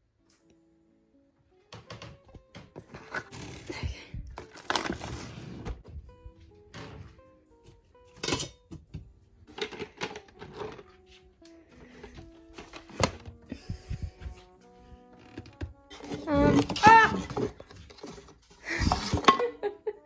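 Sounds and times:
background music: 0:00.0 - 0:20.0
art supplies knocking and clattering: 0:01.7 - 0:03.7, 0:08.1 - 0:11.0.

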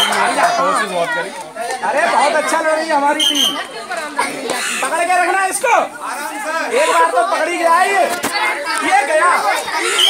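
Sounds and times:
children talking and calling out: 0:00.0 - 0:10.0.

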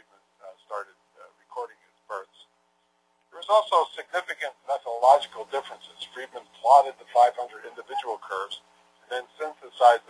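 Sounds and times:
lecturer talking: 0:00.0 - 0:02.6, 0:03.2 - 0:10.0.

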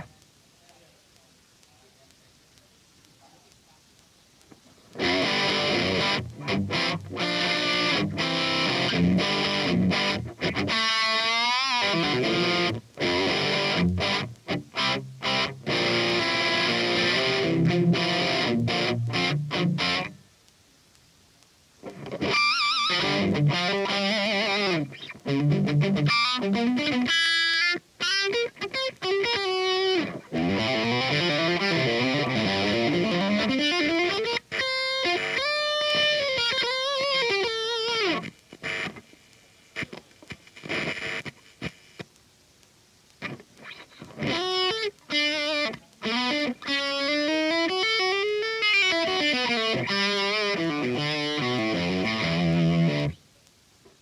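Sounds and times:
electric guitar lead lines: 0:04.9 - 0:20.3, 0:21.8 - 0:41.3, 0:43.2 - 0:53.2.

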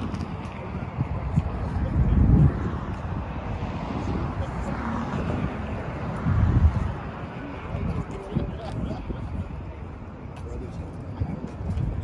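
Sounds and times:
faint background chatter: 0:00.0 - 0:12.0
wind buffeting microphone: 0:00.0 - 0:12.0.

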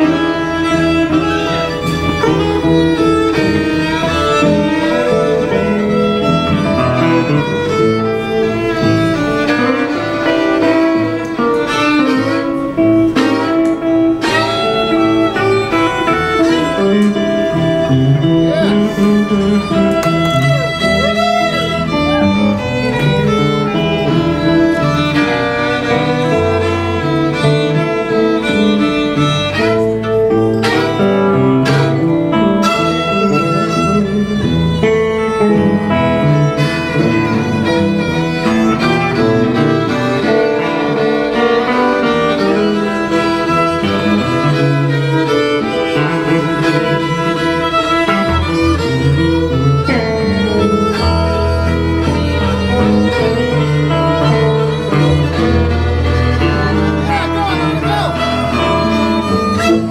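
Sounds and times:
electric guitar: 0:00.0 - 0:59.9
fiddle lead line: 0:00.0 - 0:59.9.

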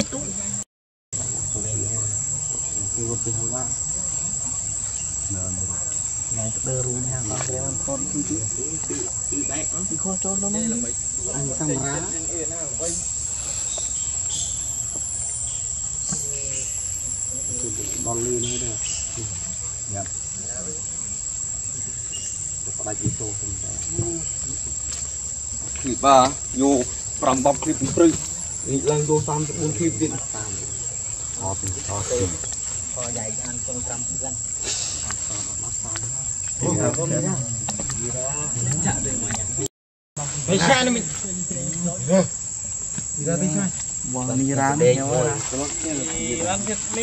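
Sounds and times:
high-pitched insect drone: 0:01.2 - 0:47.0.

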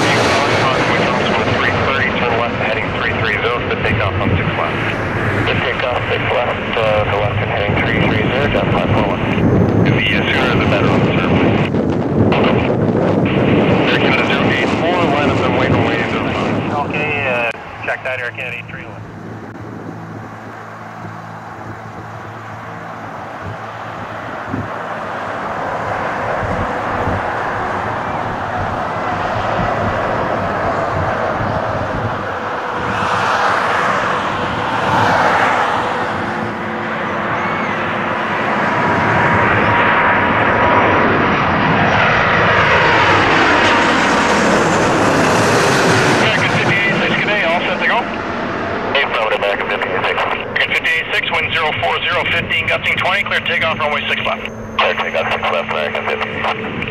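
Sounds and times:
jet airliner engine noise: 0:00.0 - 0:56.9
whining tones sliding down: 0:17.5 - 0:56.9.

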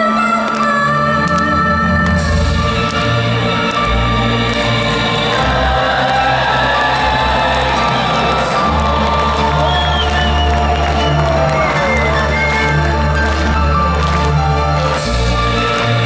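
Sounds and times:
crowd cheering and whooping: 0:04.5 - 0:16.0.

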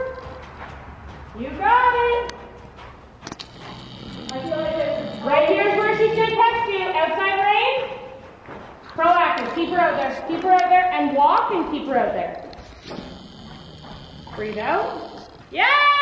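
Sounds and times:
indistinct talking: 0:03.5 - 0:08.0.

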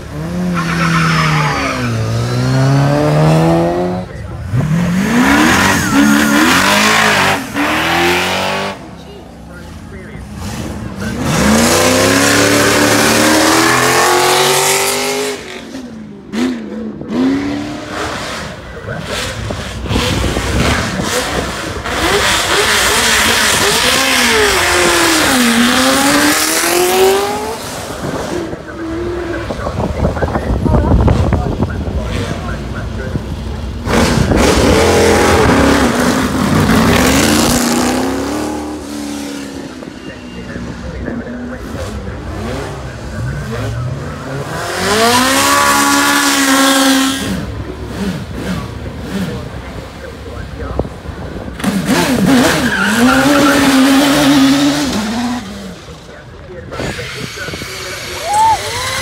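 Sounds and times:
car engines accelerating hard: 0:00.0 - 0:59.0.

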